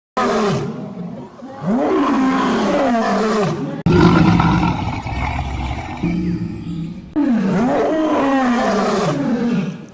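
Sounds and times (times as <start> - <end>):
lion roaring: 1.6 - 9.8.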